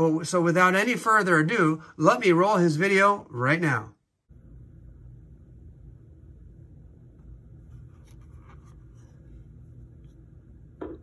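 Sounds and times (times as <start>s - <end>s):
faint steady low hum: 3.2s - 11.0s.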